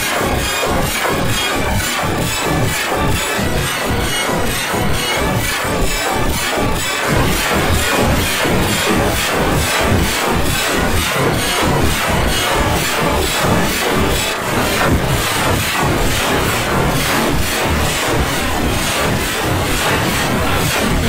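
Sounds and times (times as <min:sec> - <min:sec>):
electronic music with driving beat: 0:00.0 - 0:21.0.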